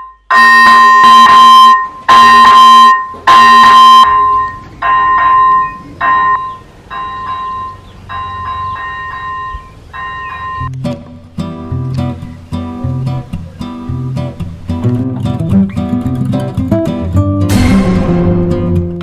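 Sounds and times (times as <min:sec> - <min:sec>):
electronic warning bell ringing: 0:00.0 - 0:10.8.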